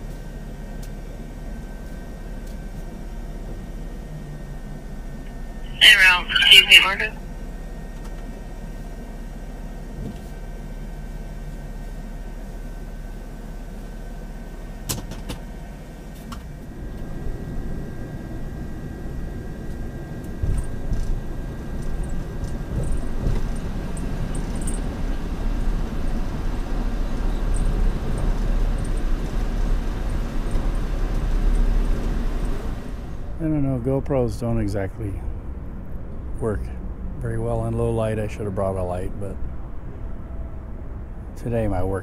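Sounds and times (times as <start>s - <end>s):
car engine and tyre rumble: 0.0s - 42.0s.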